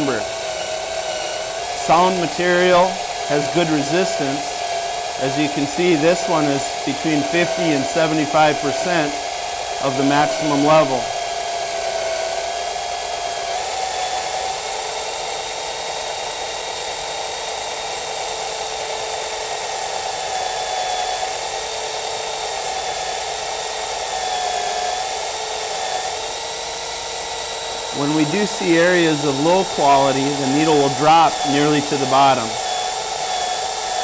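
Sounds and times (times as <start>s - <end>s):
microdrill motor whine: 0.0s - 34.0s.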